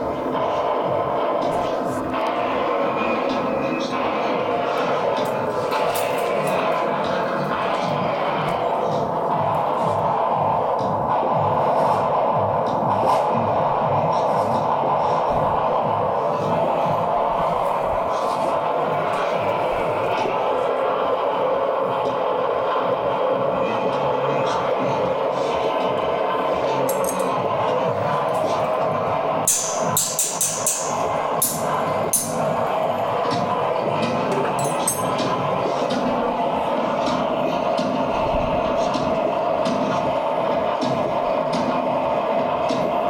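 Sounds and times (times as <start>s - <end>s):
low throb: 6.6s - 43.0s.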